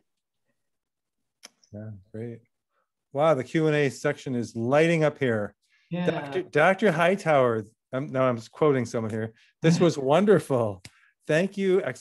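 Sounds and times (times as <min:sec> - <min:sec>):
person saying yeah: 0:06.0 - 0:06.5.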